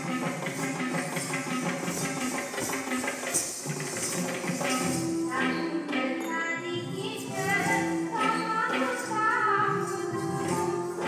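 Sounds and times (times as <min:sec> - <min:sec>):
quick steady percussion beat: 0:00.0 - 0:05.7
pitched melody notes: 0:04.4 - 0:11.0.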